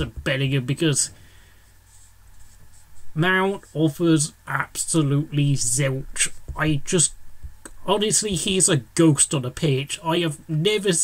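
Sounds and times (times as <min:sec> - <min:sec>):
scratchy hiss: 0:00.0 - 0:11.0.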